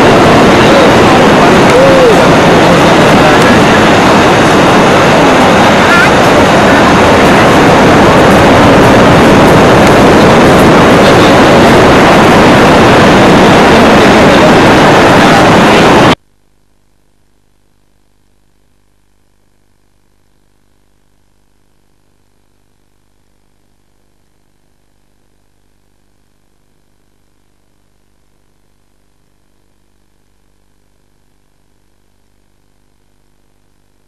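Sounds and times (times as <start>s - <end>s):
beach surf: 0.0s - 16.2s
wind buffeting microphone: 0.0s - 16.2s.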